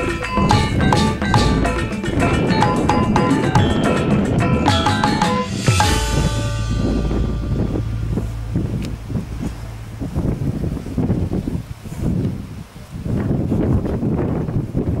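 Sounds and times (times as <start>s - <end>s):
wind buffeting microphone: 0.0s - 15.0s
low steady hum: 4.3s - 12.8s.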